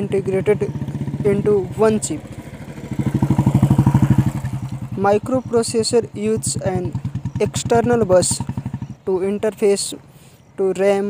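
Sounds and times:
engine pulsing rapidly: 0:00.0 - 0:11.0.

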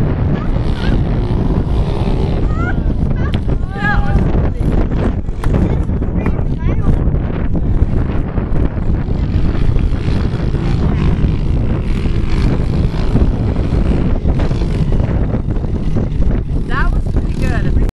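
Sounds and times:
pit bike engines running: 0:00.0 - 0:17.9
wind on microphone: 0:00.0 - 0:17.9
people talking: 0:00.2 - 0:01.3, 0:02.3 - 0:08.3, 0:16.6 - 0:17.9.

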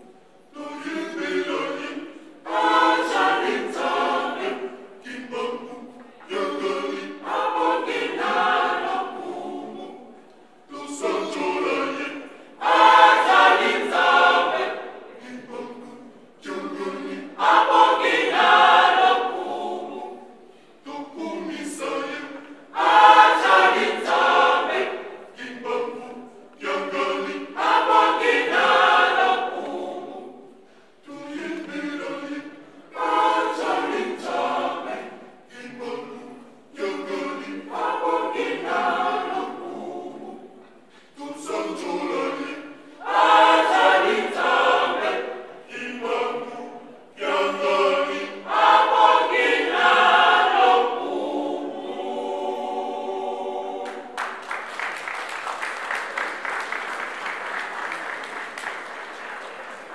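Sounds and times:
women's choir singing a cappella: 0:00.0 - 0:59.9.

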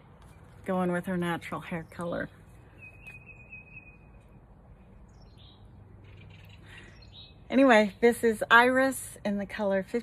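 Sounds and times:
bird whistling and calling: 0:02.7 - 0:04.2.

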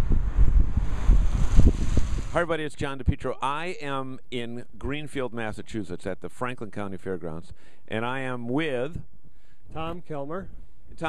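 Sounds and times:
wind buffeting microphone: 0:00.0 - 0:03.2.

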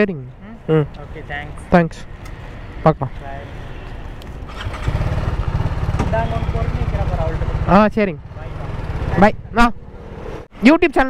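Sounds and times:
motorcycle engine running: 0:04.5 - 0:10.4.

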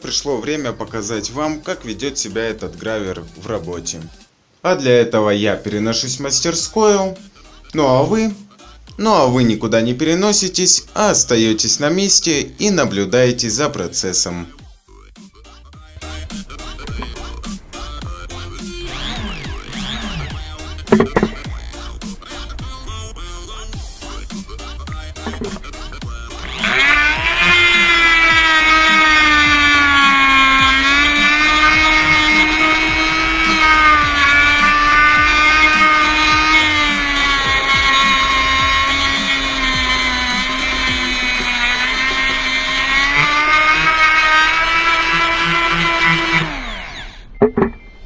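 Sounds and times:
rotary engraver whining: 0:16.0 - 0:47.8
stone grinding into wood: 0:16.1 - 0:22.6, 0:24.9 - 0:46.7.

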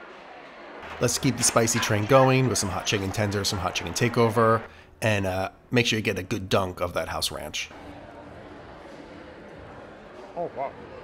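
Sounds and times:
indistinct chatter: 0:00.0 - 0:04.8, 0:07.7 - 0:11.0.

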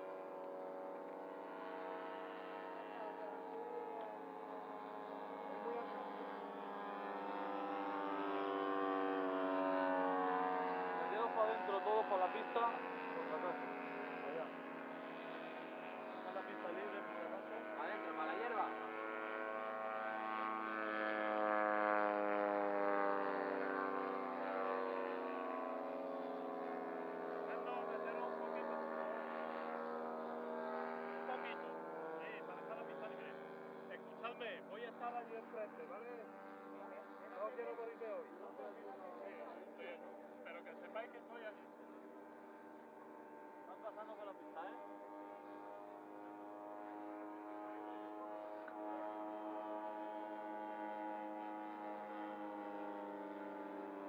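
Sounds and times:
model airplane engines droning: 0:00.0 - 0:54.0.

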